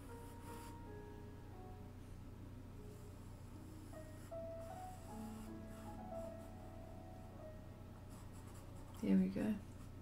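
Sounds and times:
pencil scratching on paper: 0:08.1 - 0:09.2.

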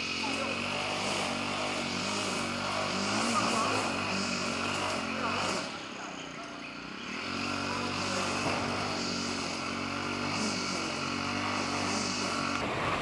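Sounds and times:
motor humming: 0:00.0 - 0:12.7.

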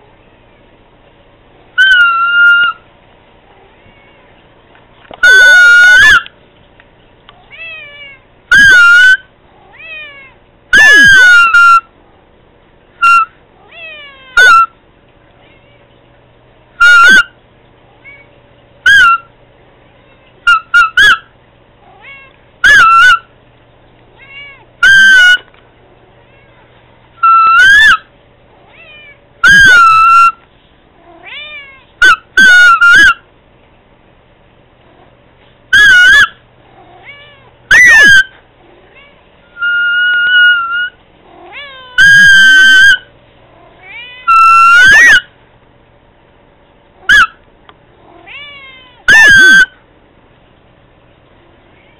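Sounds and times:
cat meowing: 0:03.6 - 0:04.4, 0:07.4 - 0:11.8, 0:13.6 - 0:14.7, 0:21.8 - 0:23.3, 0:24.1 - 0:25.5, 0:26.2 - 0:30.4, 0:31.0 - 0:33.2, 0:35.8 - 0:38.3, 0:38.9 - 0:43.1, 0:43.8 - 0:45.3, 0:48.1 - 0:49.8.

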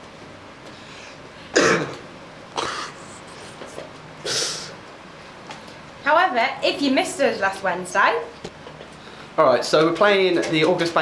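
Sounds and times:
person coughing: 0:01.5 - 0:02.0, 0:02.6 - 0:03.0.

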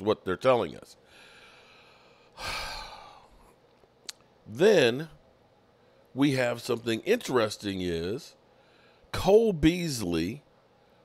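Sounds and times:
man talking: 0:00.0 - 0:01.0, 0:04.4 - 0:05.2, 0:06.2 - 0:08.4, 0:09.1 - 0:10.5
man breathing into microphone: 0:01.1 - 0:03.5.

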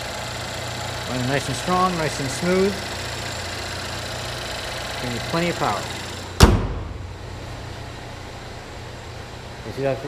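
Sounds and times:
car engine idling: 0:00.0 - 0:10.0
car hood slamming shut: 0:06.4 - 0:07.3.

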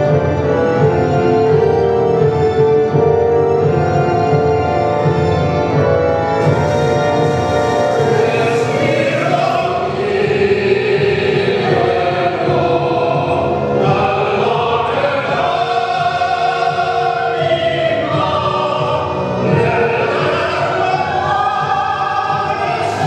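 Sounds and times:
mixed choir singing: 0:06.4 - 0:23.0
male soloist singing: 0:08.0 - 0:23.0.

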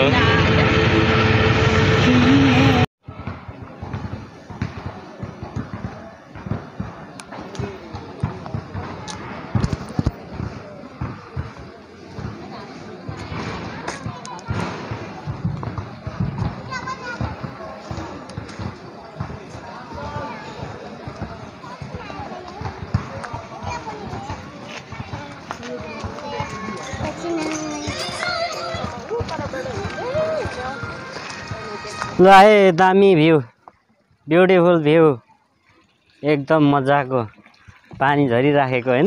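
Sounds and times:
steady tone: 0:00.0 - 0:02.9.

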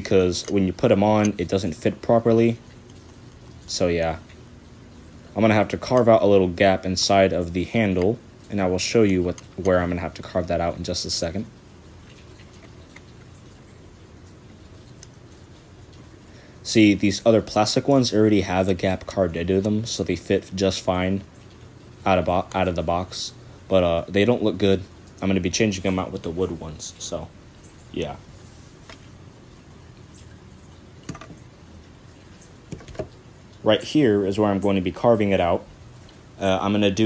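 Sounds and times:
light rain patter: 0:00.0 - 0:37.0
low room hum: 0:00.0 - 0:37.0.

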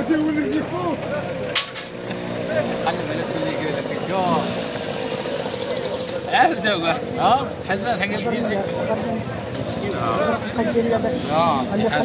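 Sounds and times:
engine humming: 0:00.0 - 0:12.0
market chatter: 0:00.0 - 0:12.0.

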